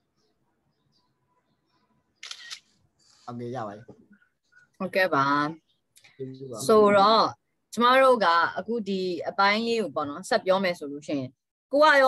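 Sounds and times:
man speaking over video call: 6.1 - 6.9.

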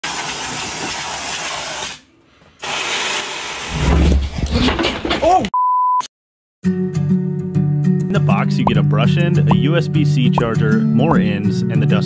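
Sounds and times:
censor bleep: 5.6 - 6.1
person speaking: 8.2 - 10.7.

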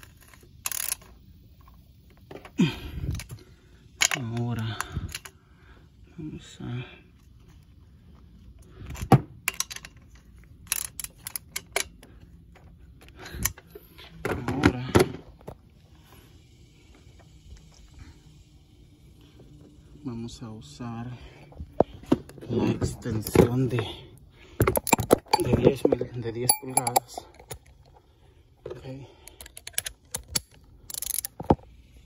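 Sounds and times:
ratchet clicking: 0.0 - 1.8, 9.5 - 12.1, 29.2 - 32.0
metal hand tools clicking: 26.5 - 27.6.

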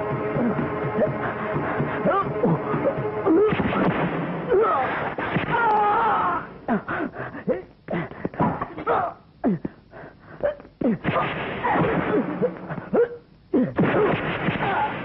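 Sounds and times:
sharp punching blows: 3.3 - 6.2, 10.8 - 13.0, 13.6 - 15.0
wavering wailing cries: 5.5 - 6.8.

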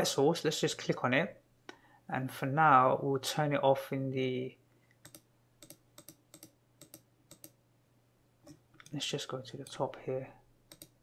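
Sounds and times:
computer mouse clicks: 5.0 - 7.6, 10.7 - 11.0.

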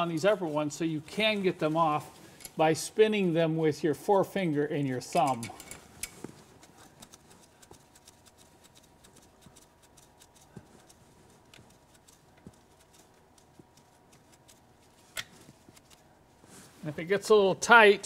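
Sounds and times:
small metallic clicks of nuts: 5.1 - 16.0.

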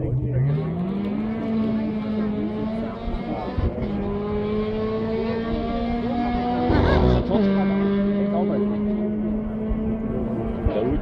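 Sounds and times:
rally car engine revving high: 0.0 - 11.0.

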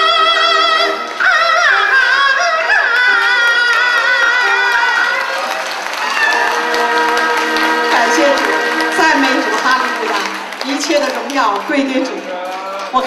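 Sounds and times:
woman singing opera style: 0.0 - 5.2, 6.3 - 12.0
backing music: 0.0 - 12.3
applause: 2.6 - 13.0.

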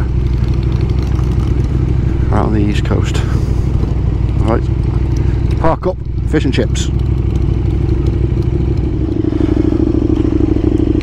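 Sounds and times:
motorcycle engine at low revs: 0.0 - 11.0.

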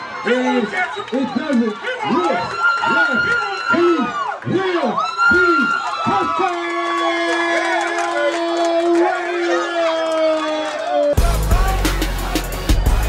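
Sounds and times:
spectators cheering and yelling: 0.0 - 13.0.

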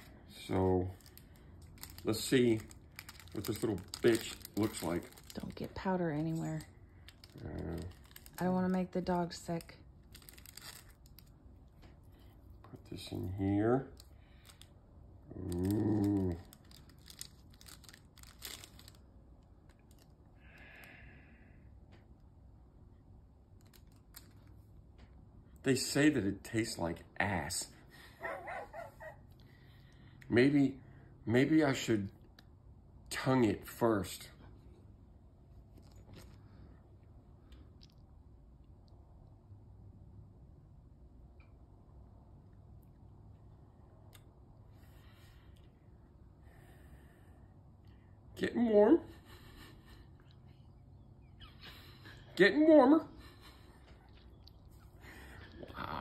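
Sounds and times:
foil pouch crinkling: 0.9 - 11.4, 15.5 - 19.1.

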